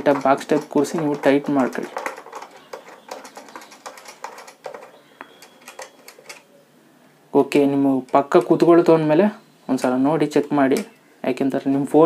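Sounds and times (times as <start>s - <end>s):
plastic and metal parts clicking: 0.0s - 6.5s.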